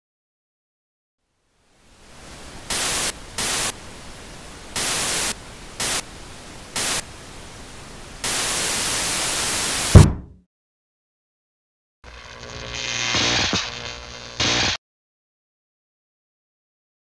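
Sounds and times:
television static hissing: 1.5s - 9.9s, 12.1s - 14.8s
fist banging on tv: 10.0s - 10.4s.

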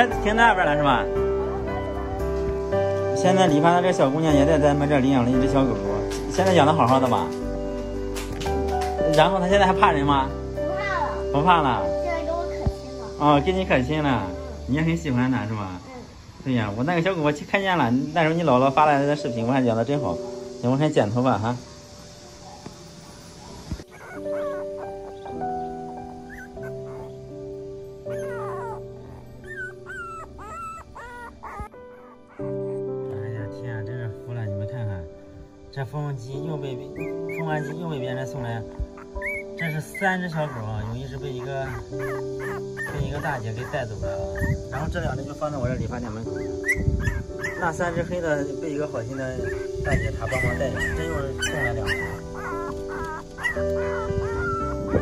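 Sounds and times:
background music with held notes: 0.0s - 55.0s
puppies whimpering: 22.4s - 33.5s, 36.8s - 55.0s.

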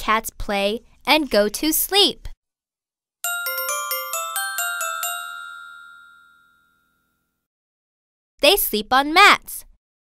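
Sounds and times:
glockenspiel-like chime: 3.2s - 7.4s.

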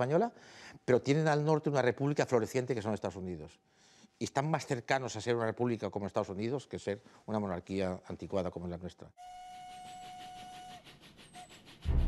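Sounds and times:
steam locomotive whistle: 9.2s - 12.0s
steam hiss: 9.6s - 12.0s.

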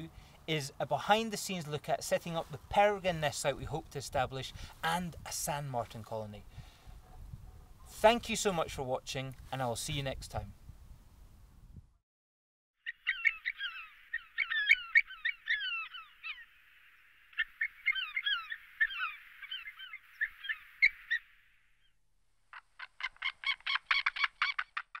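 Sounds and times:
rapid sharp bird calls: 12.8s - 16.6s, 17.3s - 21.9s, 22.5s - 25.0s
bird calls with high bending notes: 12.8s - 24.8s.

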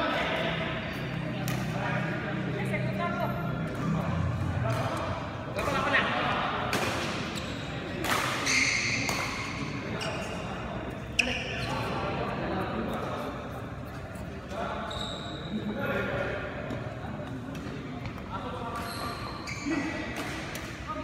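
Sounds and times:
voices echoing in hall: 0.0s - 21.0s
shoes squeaking on court floor: 7.2s - 12.0s, 13.9s - 15.6s, 18.0s - 20.2s.

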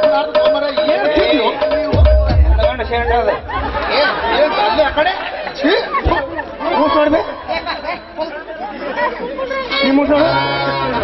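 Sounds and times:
people talking through microphones: 0.0s - 11.0s.

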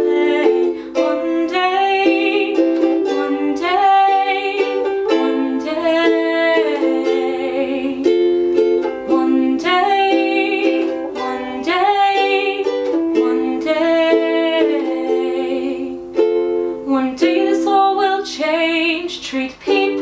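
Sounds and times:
ukulele strumming chords: 0.0s - 20.0s
woman singing: 0.0s - 20.0s.

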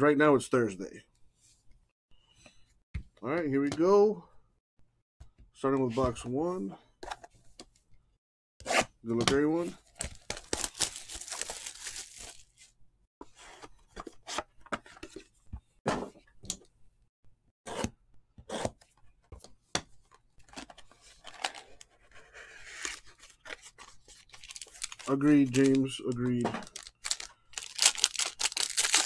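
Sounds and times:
wrap tearing and crinkling: 10.4s - 12.5s, 24.4s - 25.6s, 26.7s - 29.0s.

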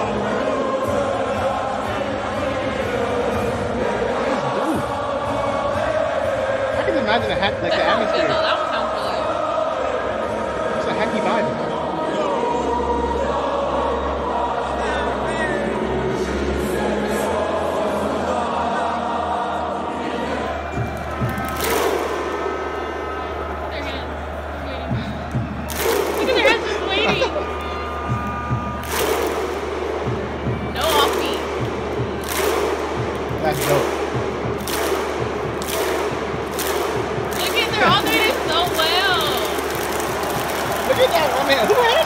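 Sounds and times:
crowd voices: 0.0s - 42.0s
crowd clapping in unison: 20.6s - 23.4s, 24.8s - 42.0s.

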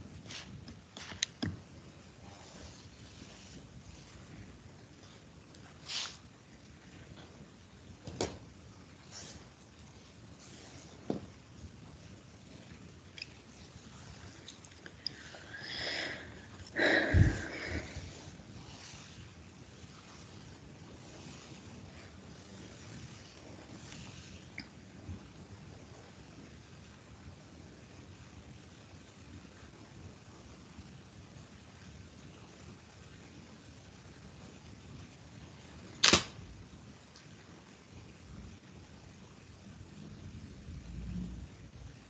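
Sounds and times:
faint hiss: 0.0s - 42.0s
breath noise on microphone: 2.1s - 6.3s, 13.8s - 24.6s
sharp click: 36.0s - 36.4s.

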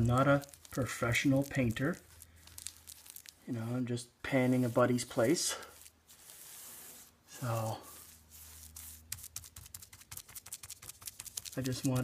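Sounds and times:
scratchy paintbrush strokes: 0.0s - 12.0s.

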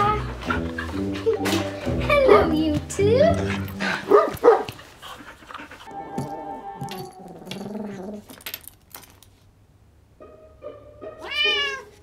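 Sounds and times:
soft background music: 0.0s - 4.0s, 5.9s - 8.0s, 10.1s - 12.0s.

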